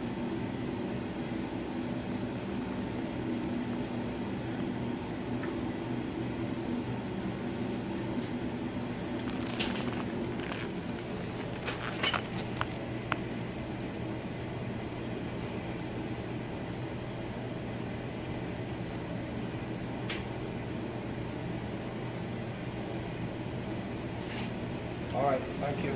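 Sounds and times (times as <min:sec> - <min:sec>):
equipment low hum: 0:00.0 - 0:21.3.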